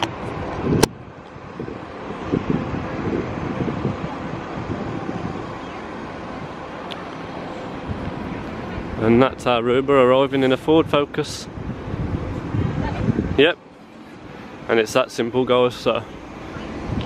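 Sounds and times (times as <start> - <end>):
outdoor ambience: 0.0 - 17.0
wind buffeting microphone: 0.0 - 17.0.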